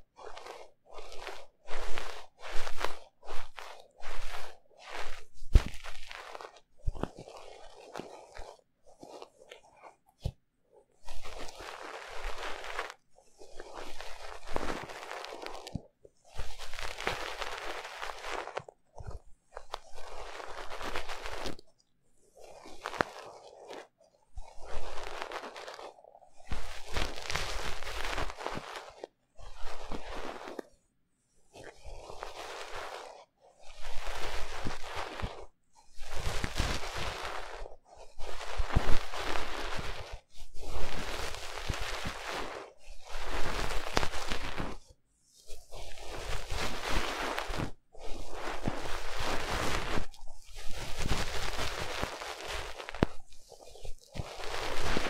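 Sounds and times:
ear picks scratching microphone: 0:00.0 - 0:10.4, 0:11.0 - 0:21.8, 0:22.4 - 0:30.8, 0:31.5 - 0:44.9, 0:45.5 - 0:55.0.

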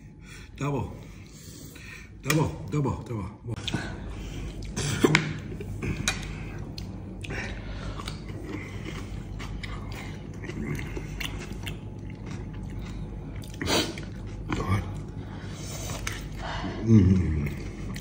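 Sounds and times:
steady low hum: 0:00.0 - 0:18.0
man chewing food: 0:03.1 - 0:18.0.

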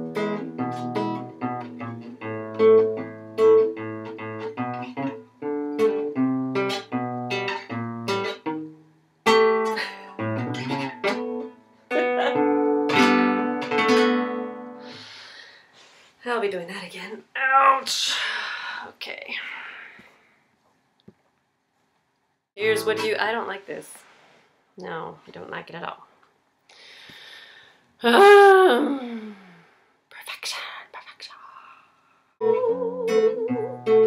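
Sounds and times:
classical guitar playing: 0:00.0 - 0:14.9, 0:22.6 - 0:23.4, 0:32.4 - 0:34.0.

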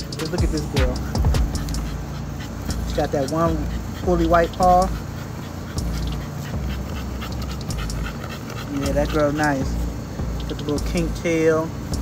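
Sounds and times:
low rumble: 0:00.0 - 0:08.2
puppy panting: 0:00.0 - 0:12.0.

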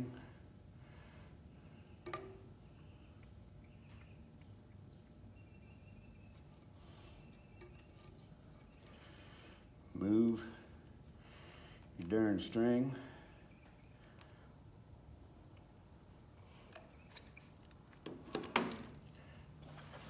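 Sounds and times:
soft handling noises: 0:15.4 - 0:20.0.

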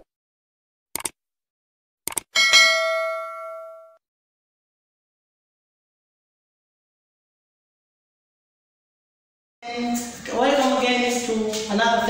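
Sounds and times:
notification bell ding: 0:02.4 - 0:04.0.

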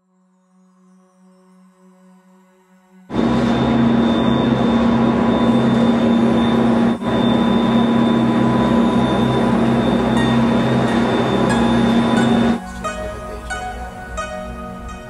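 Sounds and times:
high whine: 0:03.1 - 0:15.0
machinery humming: 0:03.1 - 0:15.0.

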